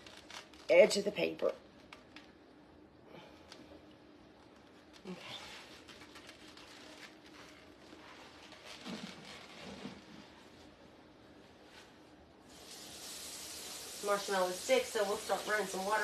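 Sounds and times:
water running into a pot: 12.5 - 16.0.

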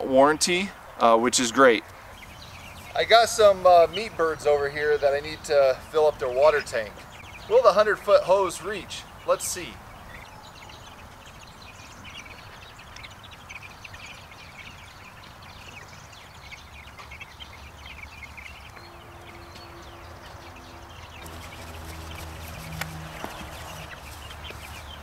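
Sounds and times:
chickens clucking: 0.0 - 25.0
small birds chirping: 0.0 - 25.0
rustling footsteps: 18.2 - 25.0.

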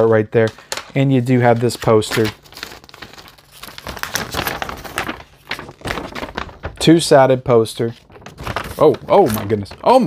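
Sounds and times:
glossy paper crinkling: 0.4 - 10.0.

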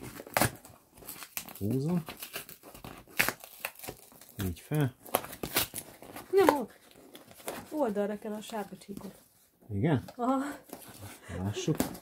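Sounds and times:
cardboard box being torn open: 0.0 - 7.7.

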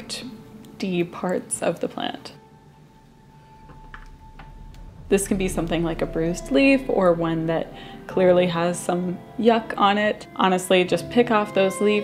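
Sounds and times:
faint held tone: 2.5 - 9.3.

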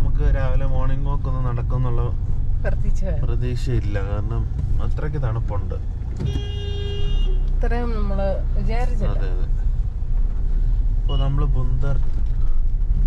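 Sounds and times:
car engine and road noise: 0.0 - 13.0
vehicle horn honk: 6.2 - 7.5.

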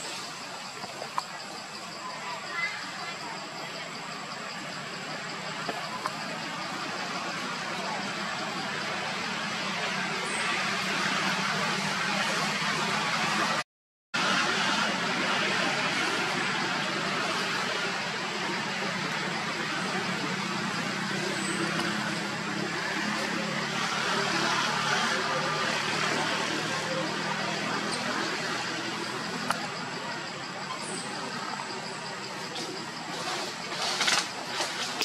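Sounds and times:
continuous hiss: 0.0 - 13.6
low rumble of road traffic: 0.0 - 13.6, 14.2 - 35.0.

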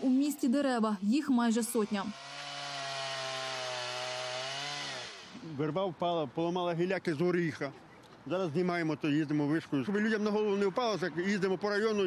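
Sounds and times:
chainsaw cutting tree trunk: 1.6 - 5.5.

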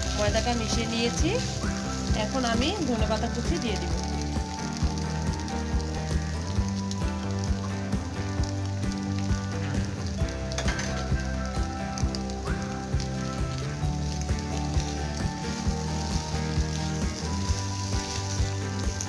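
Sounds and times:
background music with held chords: 0.0 - 19.0
filling sizzling in a frying pan: 0.0 - 19.0.

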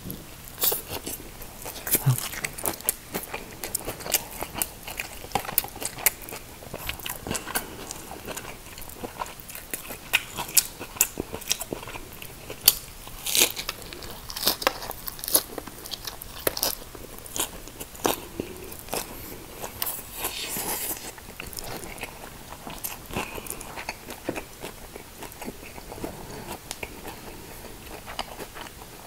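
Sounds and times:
crisp crunchy chewing: 0.5 - 29.0.

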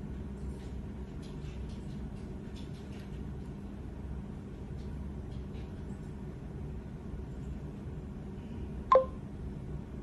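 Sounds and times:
short two-tone electronic beep: 8.9 - 9.2.

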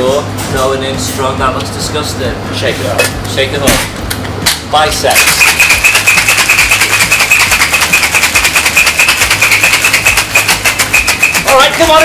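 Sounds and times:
ice rattling in cocktail shaker: 5.1 - 12.0.

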